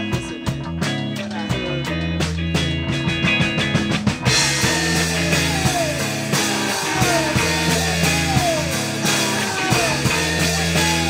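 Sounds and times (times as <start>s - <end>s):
rock band playing live: 0.0s - 11.0s
sliding guitar line falling in pitch: 4.3s - 11.0s.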